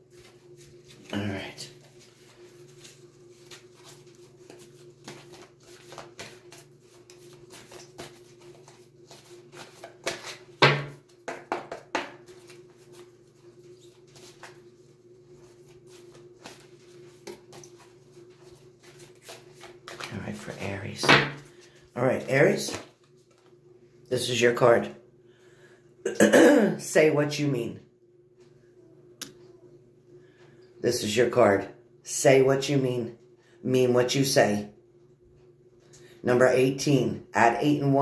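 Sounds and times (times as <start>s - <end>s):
steady low hum: 0.0s - 37.9s
cards being shuffled: 0.2s - 23.6s.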